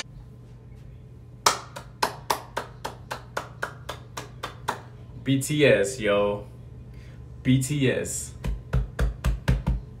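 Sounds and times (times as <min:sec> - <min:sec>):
low room hum: 0:00.0 - 0:10.0
person clapping hands: 0:01.4 - 0:04.9, 0:08.4 - 0:10.0.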